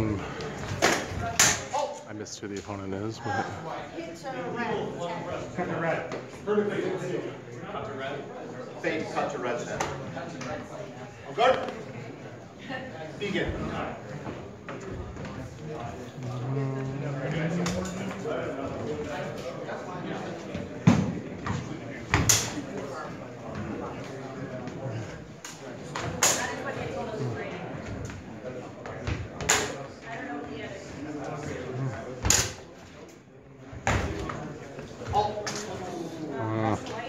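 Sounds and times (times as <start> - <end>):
murmur of voices: 0.0 - 37.0.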